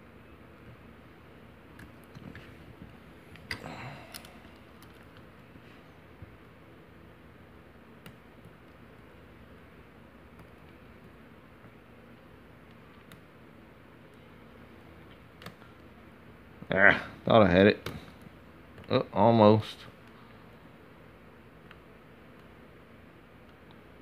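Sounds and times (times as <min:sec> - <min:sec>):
low room hum: 0:00.0 - 0:24.0.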